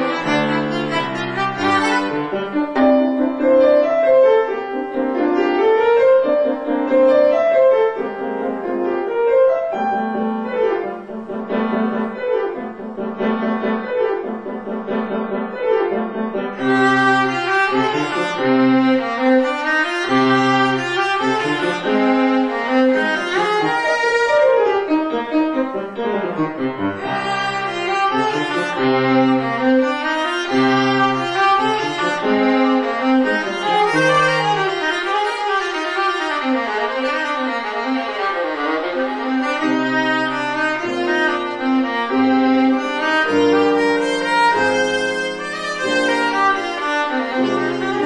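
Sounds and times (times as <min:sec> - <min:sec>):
bowed string instrument solo: 0:00.0 - 0:04.6, 0:16.6 - 0:48.0
piano accompaniment: 0:00.0 - 0:48.0.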